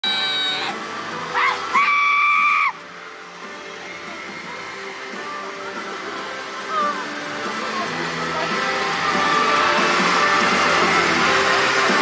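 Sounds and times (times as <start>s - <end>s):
fans screaming: 0.0s - 3.0s, 6.5s - 12.0s
music: 0.0s - 12.0s.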